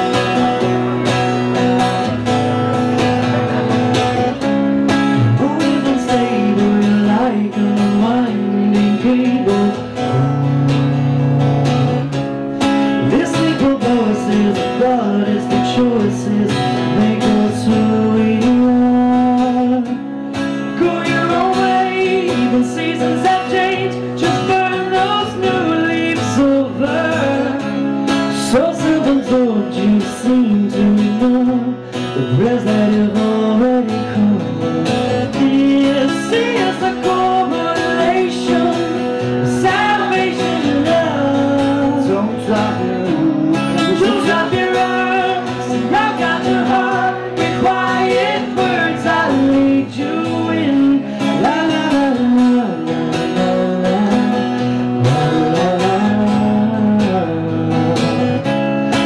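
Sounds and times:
acoustic guitars strumming: 0:00.0 - 0:59.0
man singing: 0:00.0 - 0:59.0.

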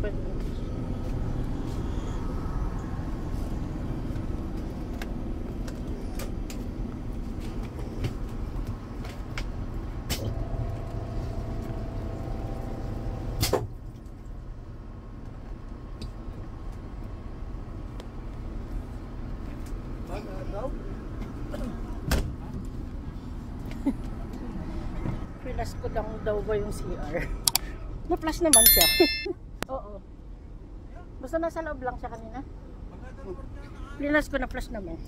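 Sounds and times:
bus engine rumble: 0:00.0 - 0:28.4.

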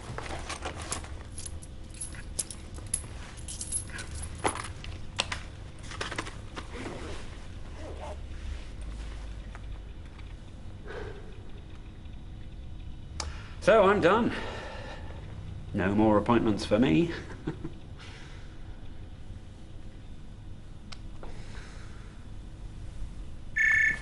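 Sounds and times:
rummaging in fabric bag: 0:00.0 - 0:01.4
light clicks and rattles: 0:00.2 - 0:06.4.

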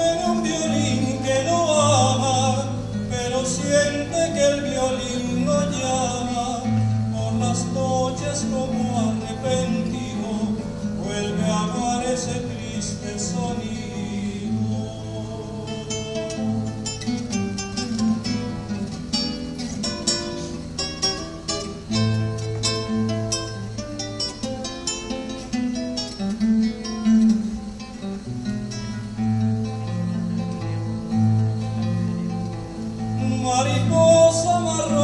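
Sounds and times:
acoustic guitar playing: 0:00.0 - 0:35.0.

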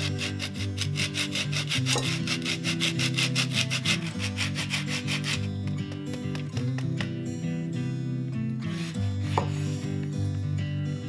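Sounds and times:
orange rasping on a grater: 0:00.0 - 0:05.5
background music: 0:00.0 - 0:11.0.

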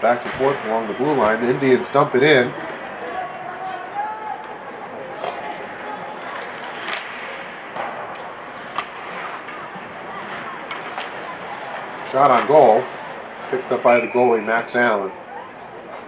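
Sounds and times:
crowd murmur: 0:00.0 - 0:16.0
hockey sticks and puck knocking: 0:06.3 - 0:14.0.

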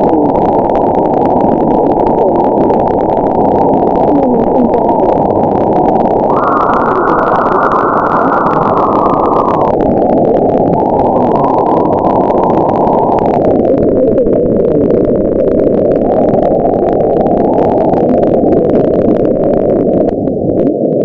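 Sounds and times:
shortwave radio static hiss: 0:00.0 - 0:21.0.

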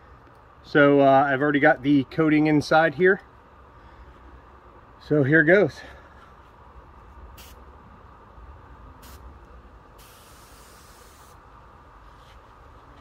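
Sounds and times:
spray gun hissing: 0:07.4 - 0:07.6, 0:09.0 - 0:09.3, 0:10.0 - 0:11.4.

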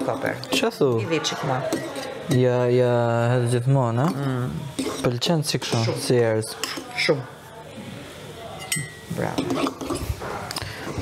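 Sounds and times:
utensils and dishes clattering: 0:00.0 - 0:02.6, 0:03.5 - 0:07.2, 0:08.5 - 0:11.0.

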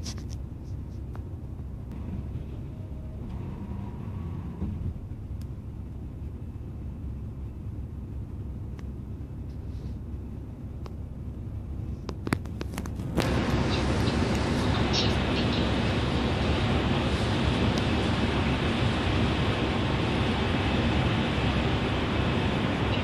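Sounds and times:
coach engine and tyres rumbling: 0:00.0 - 0:23.0.

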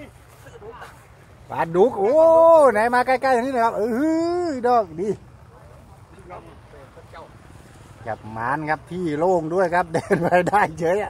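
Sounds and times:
distant voices speaking: 0:00.0 - 0:11.0
low steady hum: 0:00.0 - 0:11.0.

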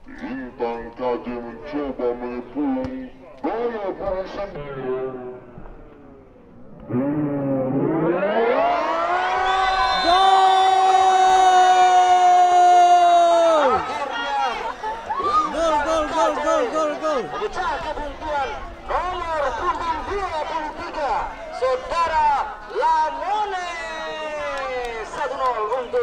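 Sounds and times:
man talking excitedly: 0:00.2 - 0:05.3, 0:15.4 - 0:26.0.

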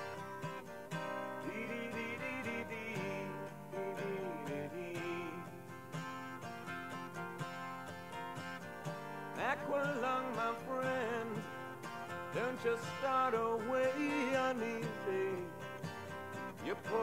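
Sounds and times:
acoustic guitar chords: 0:00.0 - 0:17.0.

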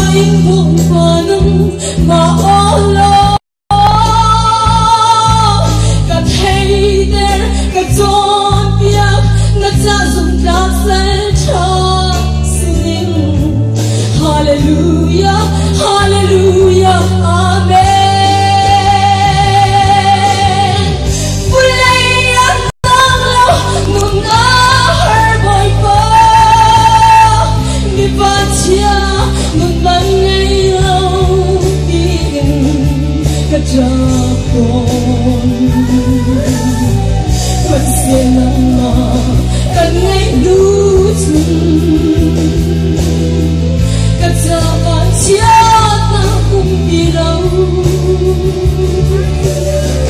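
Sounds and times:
instrumental accompaniment with bass: 0:00.0 - 0:50.0
woman singing into a microphone: 0:00.0 - 0:50.0.

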